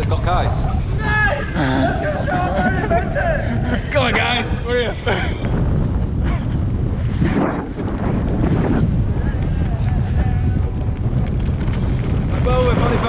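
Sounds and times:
wind buffeting microphone: 0.0s - 13.0s
person laughing: 1.4s - 5.5s, 6.2s - 6.6s.

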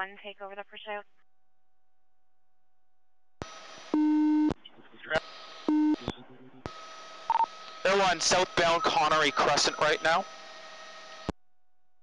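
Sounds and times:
faint steady radio tone: 0.0s - 1.0s, 3.8s - 10.4s
loud low buzzing tone: 3.4s - 11.4s
radio hiss: 3.8s - 6.7s, 7.3s - 10.3s.

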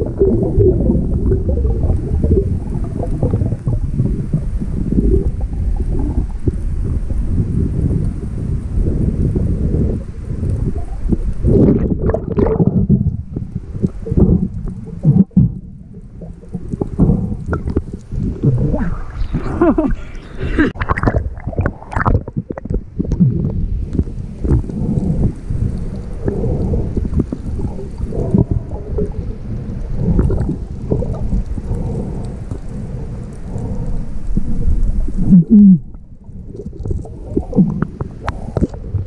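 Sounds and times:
water splashing: 0.0s - 8.1s, 9.6s - 39.0s
gurgles and small clicks: 0.0s - 39.0s
underwater water rumbling: 0.0s - 39.0s.

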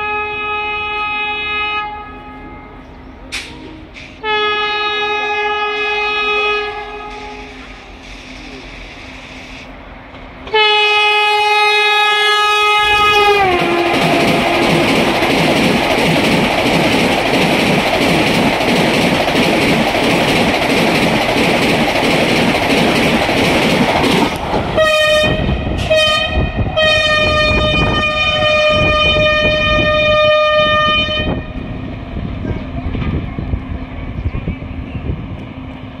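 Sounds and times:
train horn: 0.0s - 2.9s, 4.2s - 7.7s, 10.4s - 14.9s, 24.7s - 31.7s
train rushing and wheel clatter: 0.8s - 36.0s.

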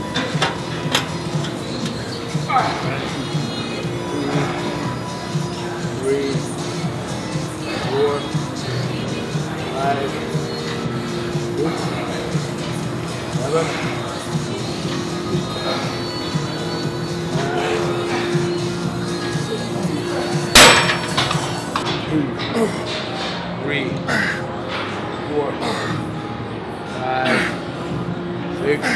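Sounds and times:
background music: 0.0s - 28.9s.

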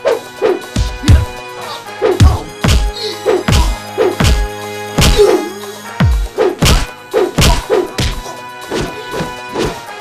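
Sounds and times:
punch sound effects: 5.0s - 5.3s, 6.6s - 8.2s.

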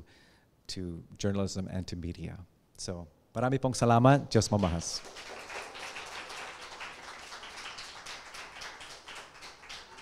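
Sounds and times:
audience applause: 4.6s - 10.0s.

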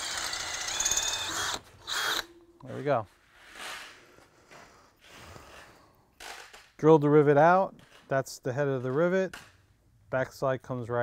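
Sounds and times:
speech: 2.6s - 3.1s, 6.8s - 9.3s, 10.1s - 11.0s
soft breaths: 3.9s - 6.2s.

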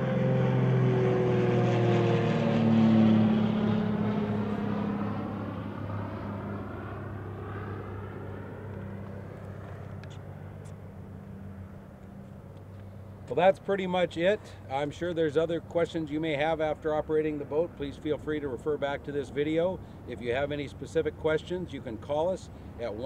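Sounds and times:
engine passing by: 0.0s - 23.0s.

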